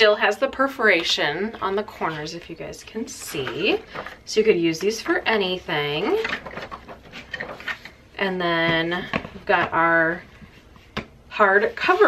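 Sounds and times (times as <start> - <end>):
paper pages flipping: 6.0 - 8.0.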